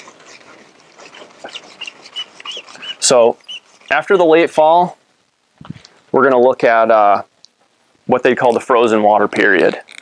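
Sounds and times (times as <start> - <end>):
marker squeaking on whiteboard: 0.0 - 4.4.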